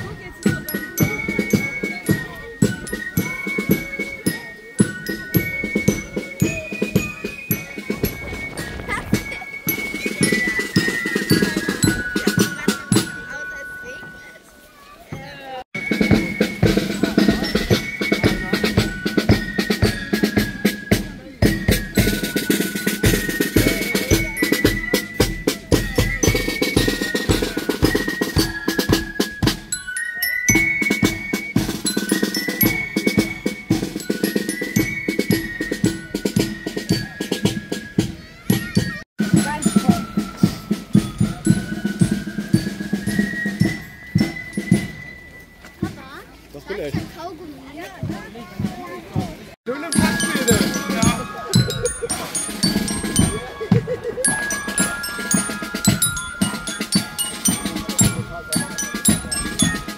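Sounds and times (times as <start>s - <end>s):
bass drum and snare beats: 0.0s - 13.2s, 15.2s - 29.8s, 30.5s - 45.2s, 46.9s - 59.9s
bell lyra: 0.0s - 47.1s, 49.7s - 59.9s
marching band playing: 0.0s - 59.9s.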